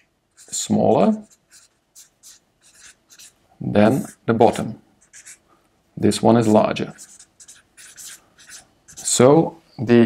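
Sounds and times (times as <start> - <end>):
marker writing on paper: 0.0 - 4.3, 5.0 - 5.4, 6.3 - 9.3.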